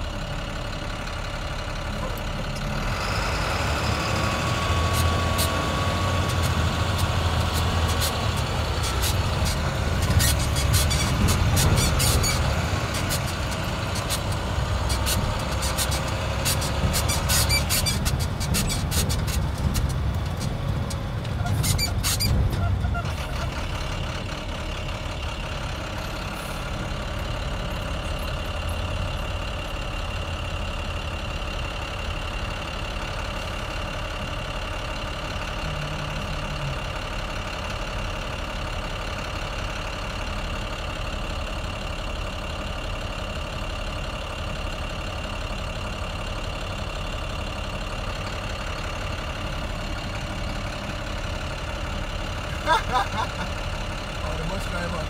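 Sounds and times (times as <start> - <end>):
vehicle engine low rumble: 0.0 - 55.0.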